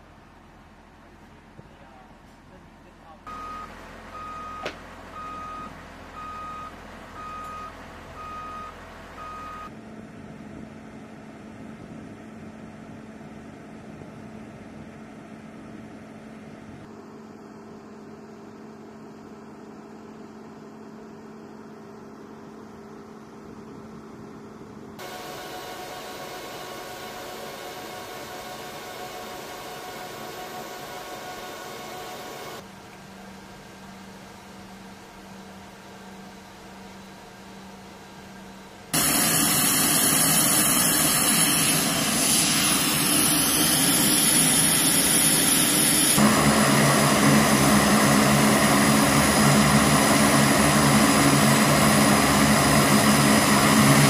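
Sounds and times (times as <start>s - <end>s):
low machine hum: 0.0s - 54.0s
turboprop engine noise: 0.0s - 54.0s
reversing alarm beeping: 3.3s - 9.7s.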